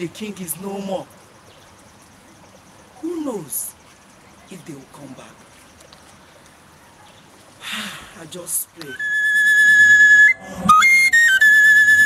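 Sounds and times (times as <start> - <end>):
high flute melody: 8.8 - 12.0.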